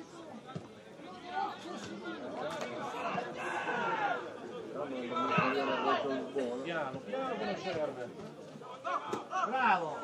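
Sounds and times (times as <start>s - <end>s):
players shouting and calling: 0.0s - 10.0s.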